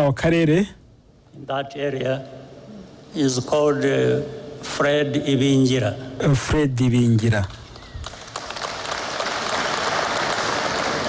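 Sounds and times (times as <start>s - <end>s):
audience applause: 7.7s - 11.0s.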